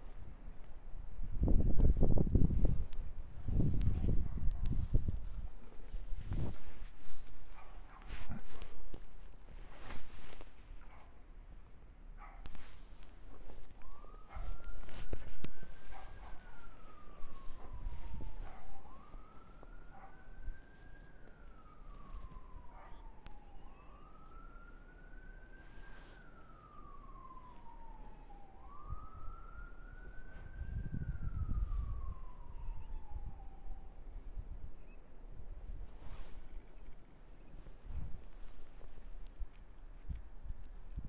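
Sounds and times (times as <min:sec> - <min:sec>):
emergency siren wailing: 0:00.0 - 0:10.6, 0:12.4 - 0:41.0.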